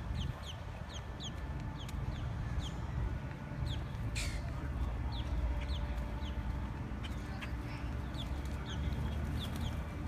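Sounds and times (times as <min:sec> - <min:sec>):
bird chirping: 0:00.0 - 0:03.0, 0:03.6 - 0:10.0
steady low rumble: 0:00.0 - 0:10.0.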